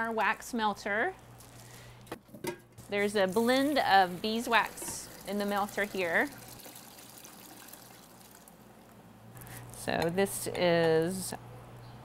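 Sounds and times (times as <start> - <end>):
wax pouring into metal pitcher: 3.0 - 8.6.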